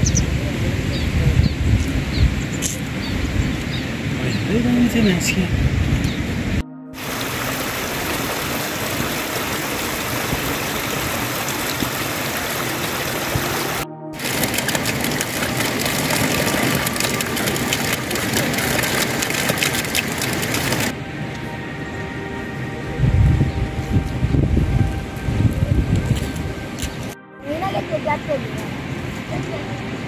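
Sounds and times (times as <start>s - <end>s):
rain hissing: 0.0s - 21.6s
water splashing from spout: 7.0s - 20.9s.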